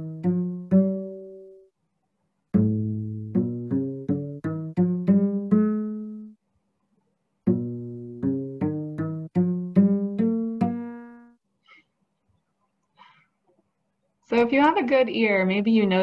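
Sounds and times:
plucked cello scales: 0:00.0 - 0:01.6, 0:02.5 - 0:06.4, 0:07.4 - 0:11.4.

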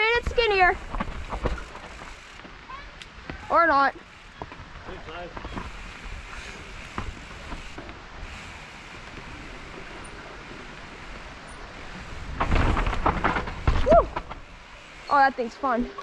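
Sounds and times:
bike rattling and knocking: 0:00.0 - 0:15.3
bike tyres and wind noise: 0:00.0 - 0:16.0.

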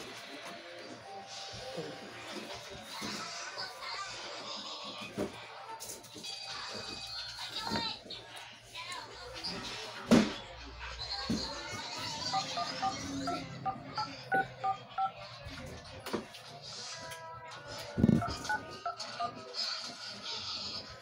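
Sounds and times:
phone keypad beeps: 0:12.3 - 0:15.2.

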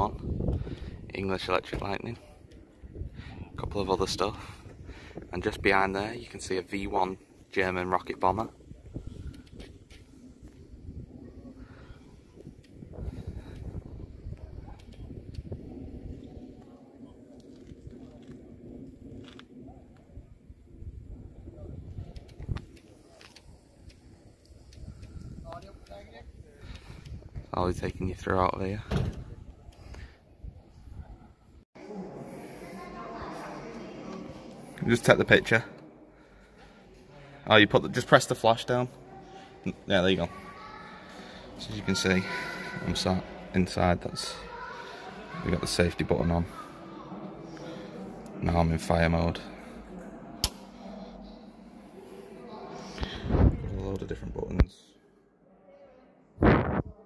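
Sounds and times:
wind rumble on microphone: 0:00.0 - 0:05.8, 0:08.1 - 0:31.6, 0:53.0 - 0:54.6, 0:56.4 - 0:57.0
thump: 0:28.9 - 0:29.3.

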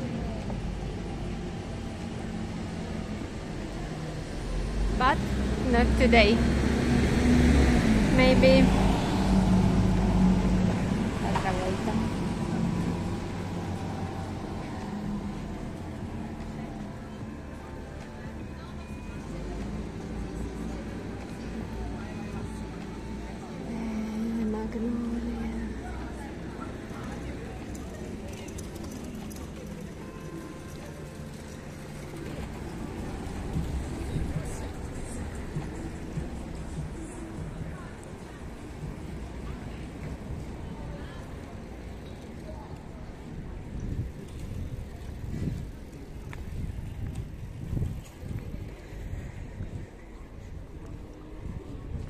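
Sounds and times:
indistinct voices: 0:00.0 - 0:46.6
vehicle engine rumble: 0:00.0 - 0:52.0.

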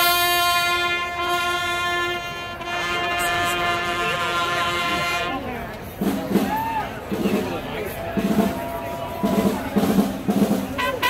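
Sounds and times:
trumpets holding a long note: 0:00.0 - 0:05.5.

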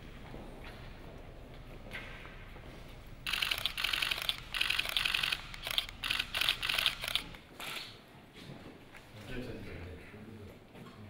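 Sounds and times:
camera shutters firing: 0:03.3 - 0:08.0.

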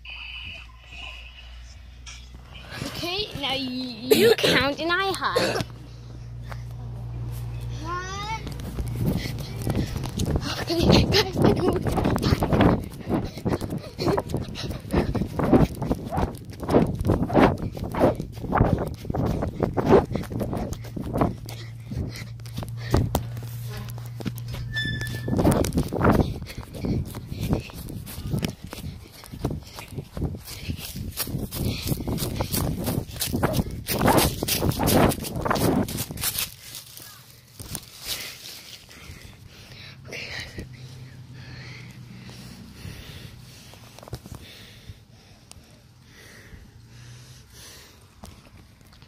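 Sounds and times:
low hum: 0:05.5 - 0:33.9.

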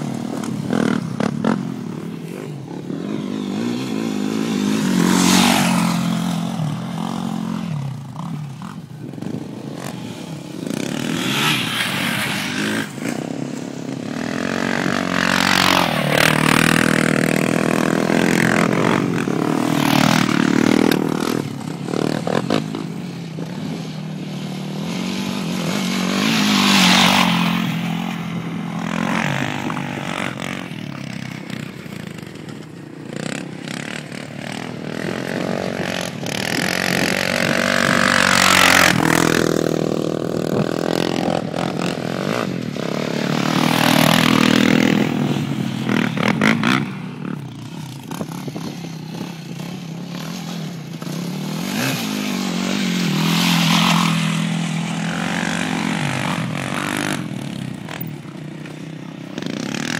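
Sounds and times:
quad engines revving: 0:00.0 - 0:59.9.

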